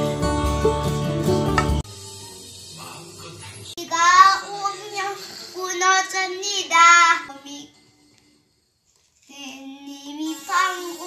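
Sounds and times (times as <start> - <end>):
young child singing: 3.8 - 7.6, 9.3 - 11.0.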